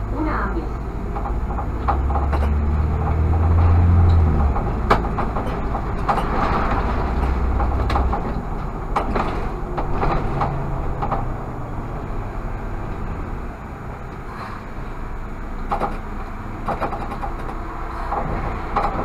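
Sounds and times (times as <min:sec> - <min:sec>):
bus body rattling: 0:00.0 - 0:19.0
bus engine drone: 0:00.0 - 0:19.0.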